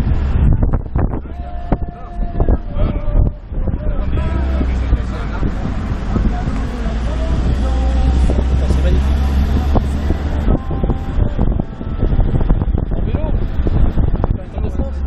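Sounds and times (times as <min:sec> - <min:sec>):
vehicle engine running: 0:00.0 - 0:15.0
wind rumbling on microphone: 0:00.0 - 0:15.0.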